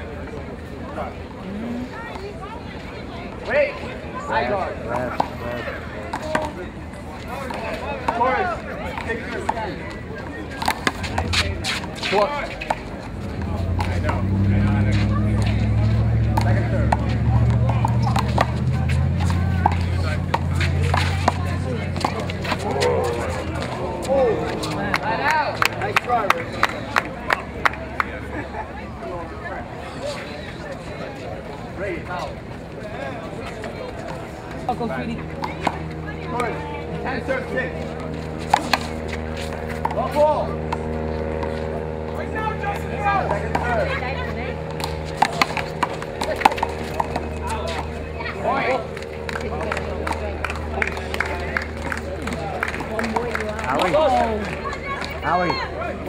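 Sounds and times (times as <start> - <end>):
onlookers' voices: 0.0 - 56.0
indistinct voices: 0.8 - 3.5, 4.1 - 27.6.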